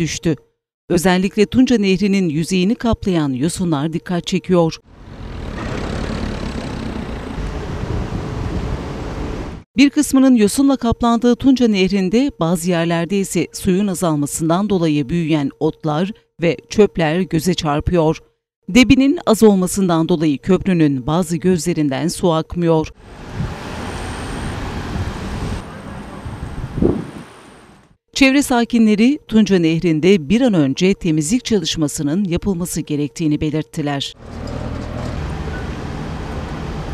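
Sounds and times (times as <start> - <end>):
wind on microphone: 7.0 - 9.6, 23.2 - 23.8, 24.4 - 27.5
wind buffeting microphone: 24.5 - 27.4.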